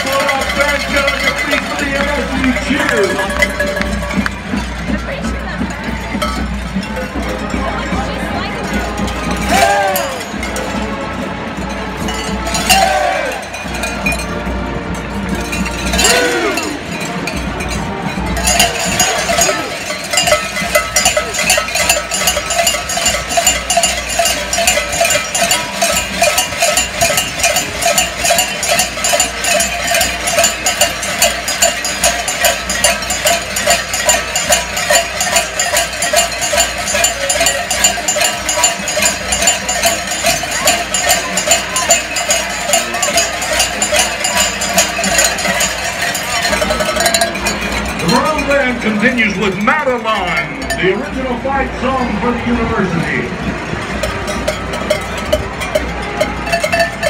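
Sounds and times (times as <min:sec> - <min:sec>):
crowd ringing cowbells: 0:00.0 - 0:57.0.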